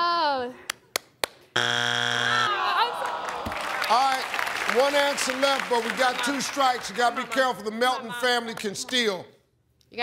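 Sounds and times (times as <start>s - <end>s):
hand claps: 0.7s - 1.4s, 3.3s - 7.4s
game-show buzzer: 1.6s - 2.8s.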